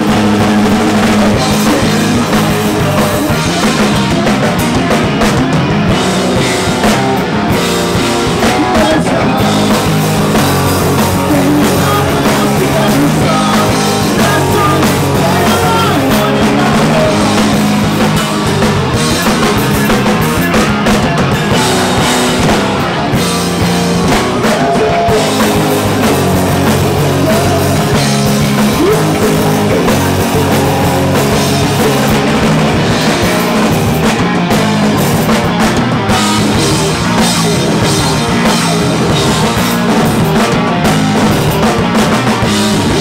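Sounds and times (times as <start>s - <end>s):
live rock band playing: 0.0s - 43.0s.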